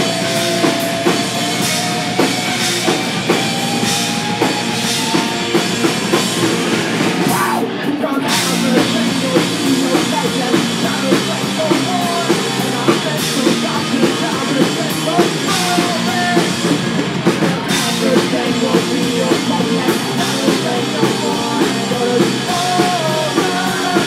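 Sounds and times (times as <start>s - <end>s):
rock band playing: 0.0s - 24.0s.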